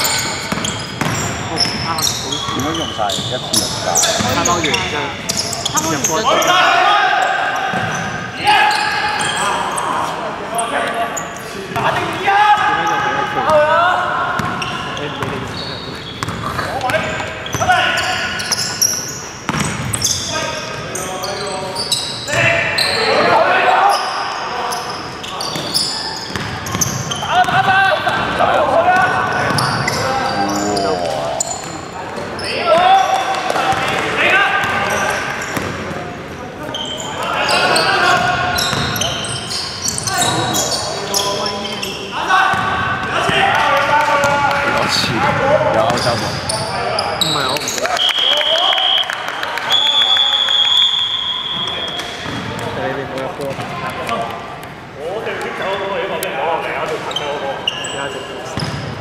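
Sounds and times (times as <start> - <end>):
players calling out: 0.0 - 54.2
basketball bouncing on wood court: 0.4 - 1.9, 7.7 - 8.0, 14.4 - 15.5, 16.2 - 17.7, 19.5 - 20.1, 26.3 - 28.4, 38.2 - 39.0, 42.5 - 43.4, 52.2 - 52.7, 58.6 - 59.0
whistle blasts: 47.9 - 52.2.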